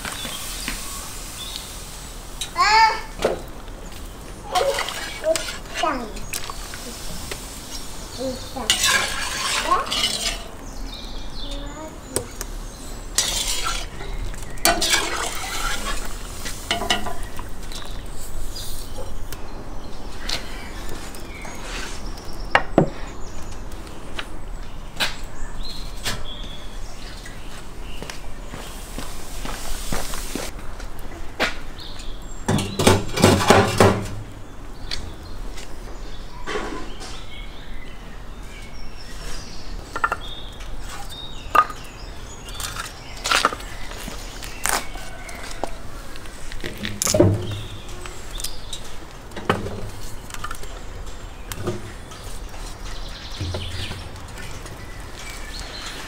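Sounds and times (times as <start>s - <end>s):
metal skimmer scraping iron pot: 4.4s - 6.6s, 8.5s - 10.6s, 13.0s - 17.4s, 53.4s - 55.9s.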